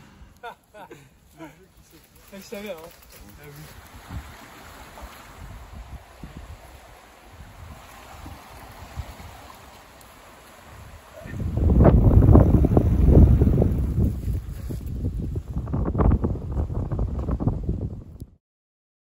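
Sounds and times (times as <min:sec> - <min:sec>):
low rush of moving water: 0:00.0 - 0:18.0
wind buffeting microphone: 0:02.4 - 0:18.4.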